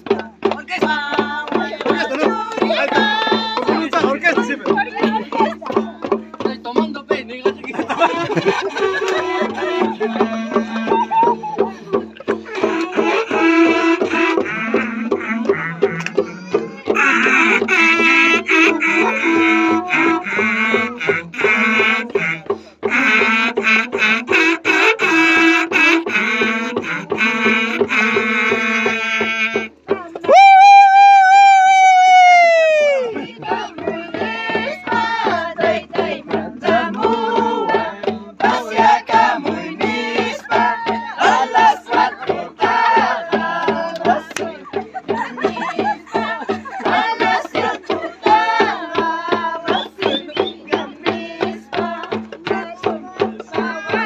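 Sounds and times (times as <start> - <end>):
women singing in high voices: 0.0 - 6.2, 8.0 - 22.6, 29.9 - 54.0
hand drums beating: 0.0 - 54.0.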